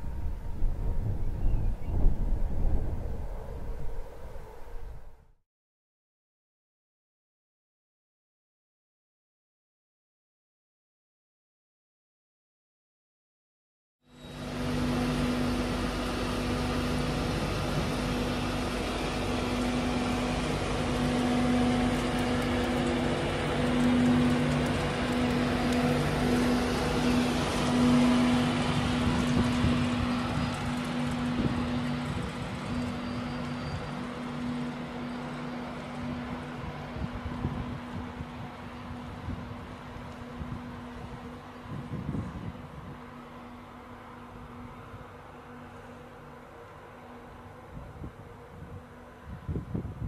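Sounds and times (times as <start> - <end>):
electric train passing: 0.0 - 5.3, 14.1 - 50.0.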